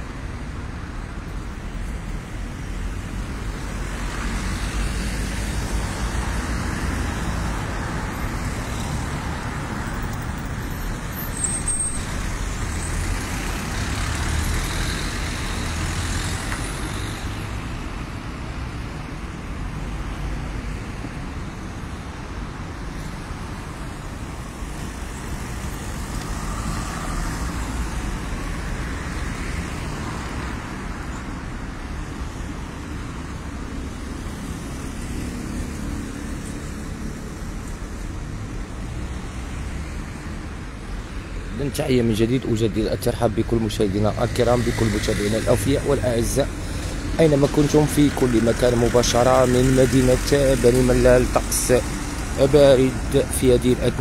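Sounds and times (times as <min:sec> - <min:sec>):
cars driving past: 0:01.9 - 0:54.0.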